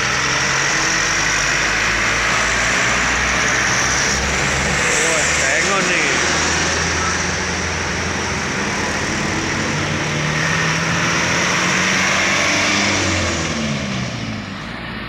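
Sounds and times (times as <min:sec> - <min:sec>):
heavy truck engines passing: 0:00.0 - 0:15.0
tyre and road noise: 0:00.0 - 0:15.0.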